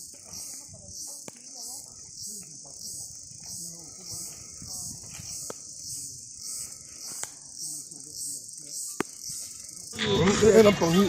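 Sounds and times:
faint voices talking: 0.0s - 11.0s
insects chirping: 0.0s - 11.0s.

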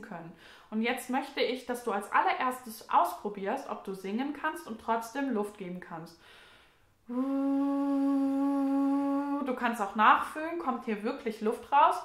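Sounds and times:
soft breath: 6.2s - 9.5s
woman singing held note: 7.1s - 9.7s.

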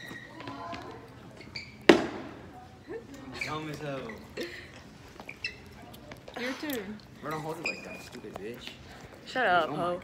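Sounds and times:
brief high squeak: 1.4s - 1.9s, 7.3s - 8.1s.

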